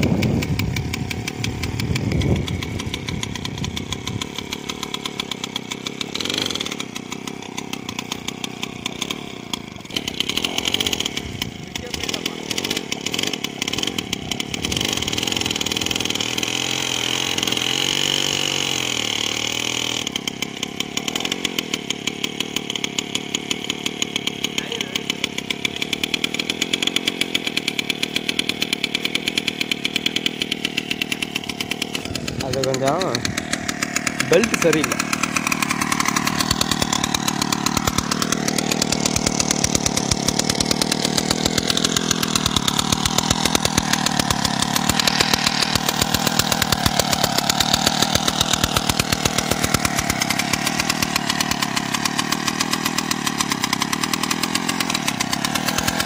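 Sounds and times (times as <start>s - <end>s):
small engine pulsing: 0.0s - 56.0s.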